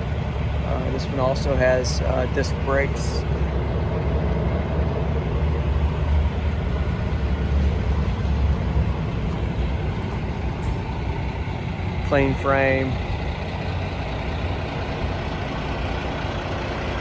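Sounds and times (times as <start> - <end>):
diesel engine idling: 0.0 - 17.0.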